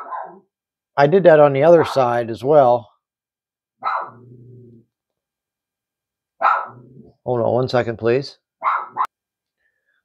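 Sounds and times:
dog barking: 0:00.0 - 0:00.5, 0:03.8 - 0:04.3, 0:06.4 - 0:06.9, 0:08.6 - 0:09.1.

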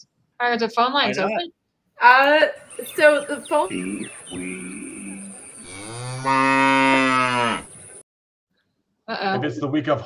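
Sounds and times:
cow mooing: 0:03.7 - 0:07.8.

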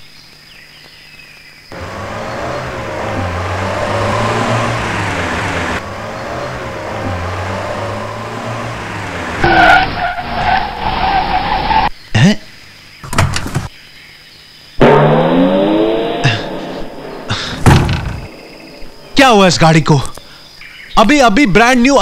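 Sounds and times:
car engine pulling away: 0:01.7 - 0:11.8, 0:14.8 - 0:19.5.

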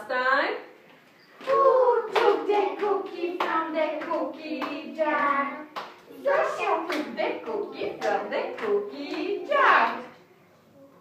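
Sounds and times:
woman and children chanting: 0:01.4 - 0:10.2
hand claps: 0:02.2 - 0:02.4, 0:06.9 - 0:07.1.

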